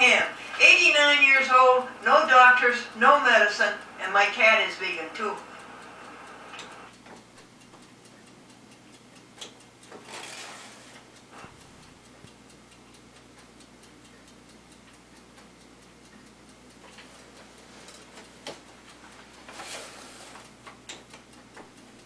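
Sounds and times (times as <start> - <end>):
faint rapid ticking: 0.0 - 22.0
soft rustling: 16.9 - 20.6.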